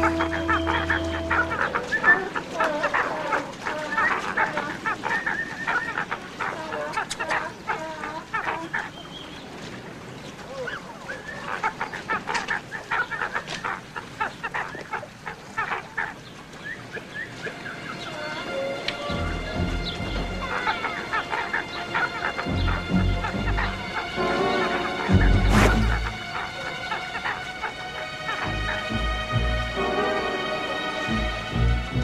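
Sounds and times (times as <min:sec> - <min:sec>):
penguins braying: 0:00.0 - 0:09.1, 0:10.5 - 0:32.0.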